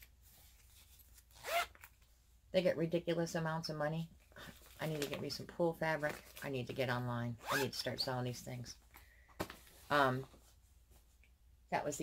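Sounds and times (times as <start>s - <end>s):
zipper pull: 1.2s - 1.9s, 7.4s - 7.7s.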